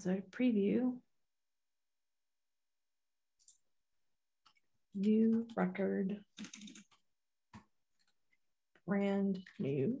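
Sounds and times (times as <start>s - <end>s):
typing on computer keyboard: 4.4s - 8.4s.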